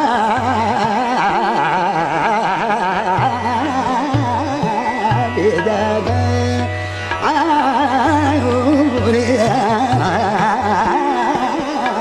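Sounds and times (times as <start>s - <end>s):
harmonium: 0.0s - 12.0s
man singing fast oscillating passage: 0.0s - 12.0s
tabla: 0.0s - 12.0s.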